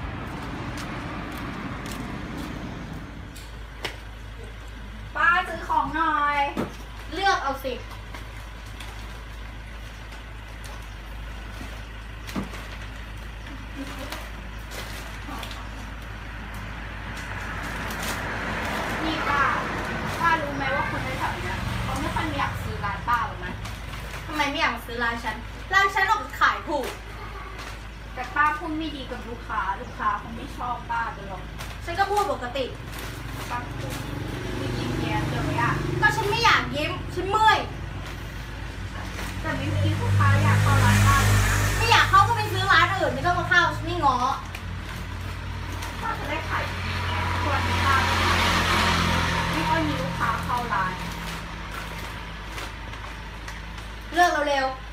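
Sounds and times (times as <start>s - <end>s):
road traffic hum: 0.0s - 54.9s.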